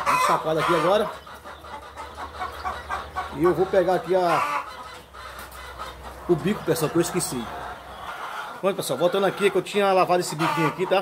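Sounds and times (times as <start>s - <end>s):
chicks peeping: 0.0s - 11.0s.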